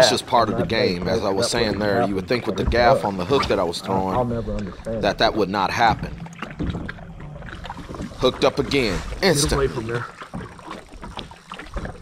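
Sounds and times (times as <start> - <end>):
waves lapping at hull: 0.0 - 12.0.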